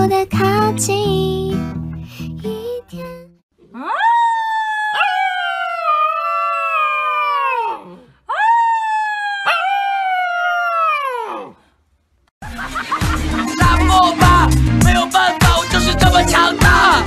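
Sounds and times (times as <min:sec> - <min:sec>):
puppy howling: 0:03.6 - 0:11.6.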